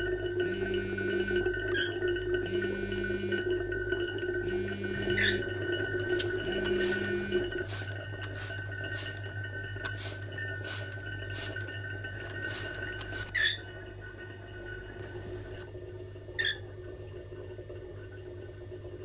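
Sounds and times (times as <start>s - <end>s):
steady hum: 0.0s - 16.0s
smartphone vibrating buzz: 0.4s - 1.5s, 2.5s - 3.5s, 4.4s - 7.5s.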